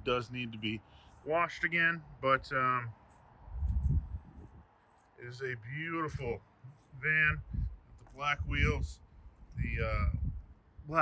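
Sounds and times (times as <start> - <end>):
low rumble on microphone: 3.5 - 4.6, 5.4 - 11.0.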